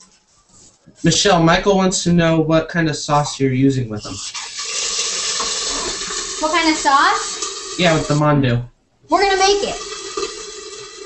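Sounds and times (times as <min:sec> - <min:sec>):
dumplings sizzling in oil: 0:04.2 - 0:08.1.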